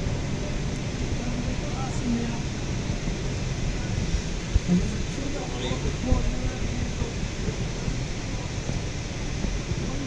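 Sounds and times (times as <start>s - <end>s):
car interior road rumble: 0.0s - 10.0s.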